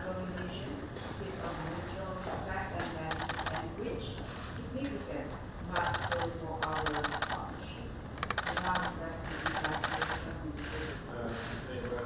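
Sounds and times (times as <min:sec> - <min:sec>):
camera shutters firing: 0:05.8 - 0:07.4, 0:08.2 - 0:10.3.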